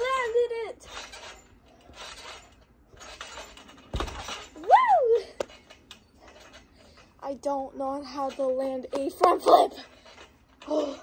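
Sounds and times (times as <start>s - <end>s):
trampoline mat thump: 2.9s - 4.7s
girl shouting woo: 4.6s - 5.4s.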